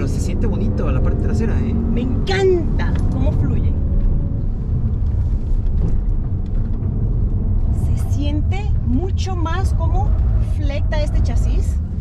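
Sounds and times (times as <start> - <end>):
car engine rumble: 0.0 - 12.0
tyres on the road: 0.0 - 12.0.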